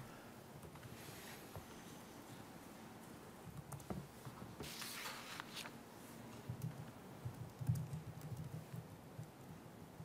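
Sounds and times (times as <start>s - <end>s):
typing on laptop keyboard: 6.5s - 10.0s.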